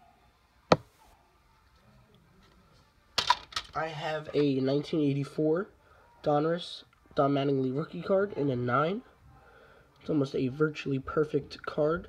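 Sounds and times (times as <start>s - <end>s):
man speaking: 10.0s - 12.0s.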